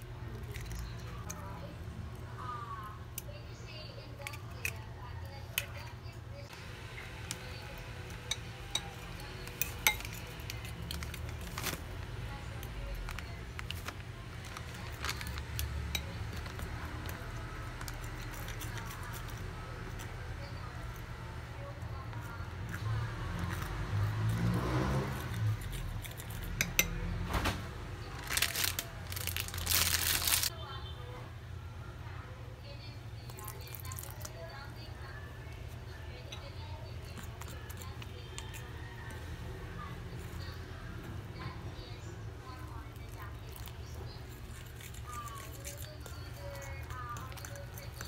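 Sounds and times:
fork clinking on ceramic bowl: 0:08.2 - 0:10.4.

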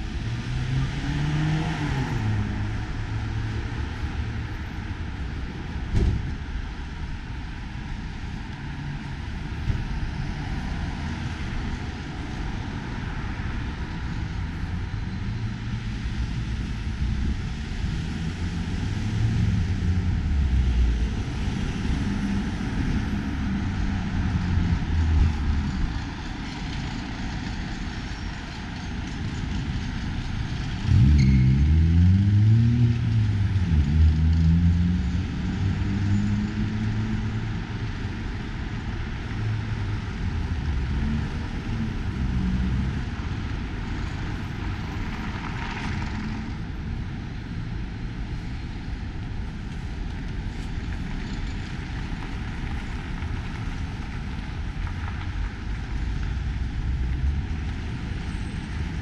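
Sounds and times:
street traffic hum: 0:00.0 - 0:59.0.

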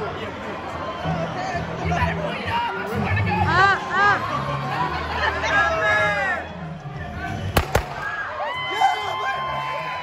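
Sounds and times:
confetti cannon pops: 0:07.6 - 0:08.2.

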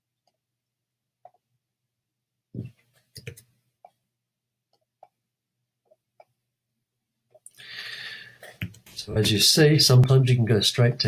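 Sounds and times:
computer mouse clicks: 0:03.1 - 0:04.0
short breath: 0:07.5 - 0:08.6.

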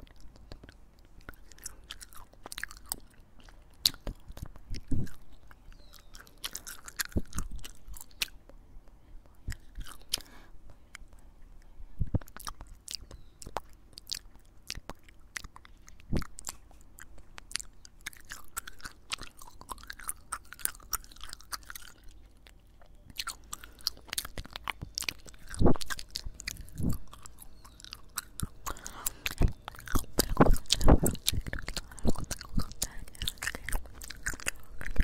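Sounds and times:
gum chewing mouth sounds: 0:00.0 - 0:35.0.

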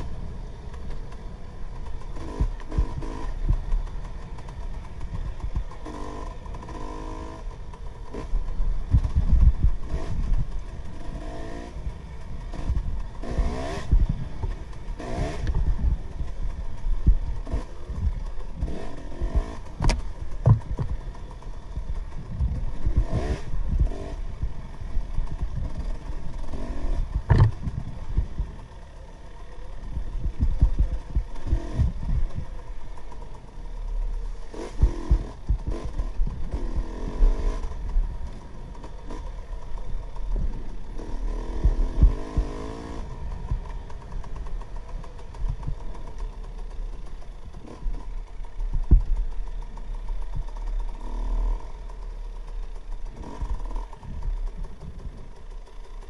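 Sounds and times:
dirt bike engine revving: 0:00.0 - 0:56.0
bike thumps and rattles: 0:08.9 - 0:10.5, 0:12.5 - 0:25.9, 0:26.5 - 0:28.5, 0:48.6 - 0:49.2.

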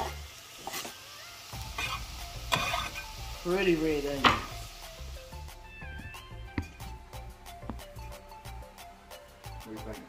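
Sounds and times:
vegetables sizzling in skillet: 0:00.0 - 0:07.4.

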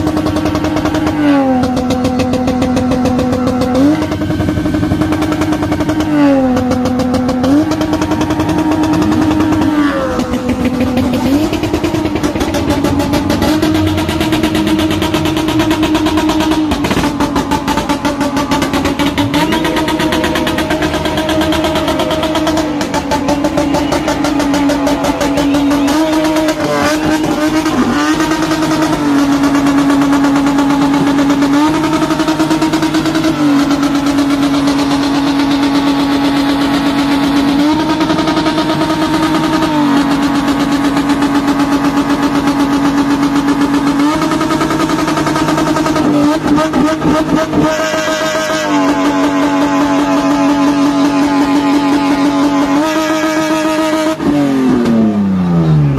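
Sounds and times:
engine at high revs: 0:00.0 - 0:55.9
rapid exhaust crackle: 0:00.0 - 0:55.9.

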